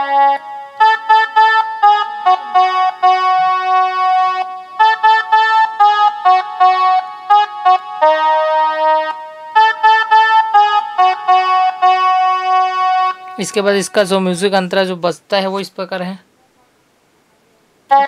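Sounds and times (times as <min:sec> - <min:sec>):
mini keyboard melody: 0:00.0 - 0:14.3.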